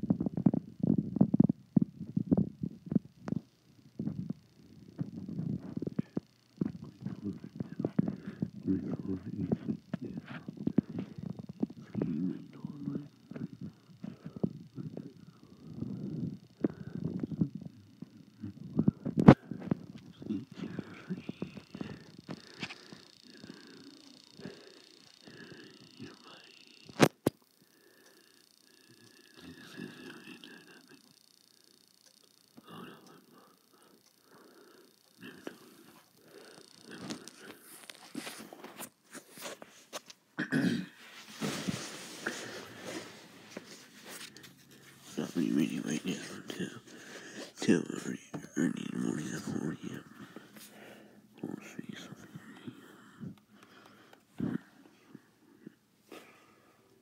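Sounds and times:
low mumbled voice: 4.9s - 22.6s, 29.4s - 31.0s, 32.6s - 33.5s, 35.2s - 37.8s, 40.4s - 42.8s, 47.6s - 50.4s
sharp clicks: 20.8s - 29.4s
throat clearing: 40.4s - 41.0s.

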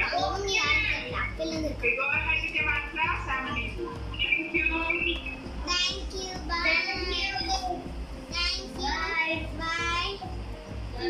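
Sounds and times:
young girl singing: 5.6s - 7.8s.

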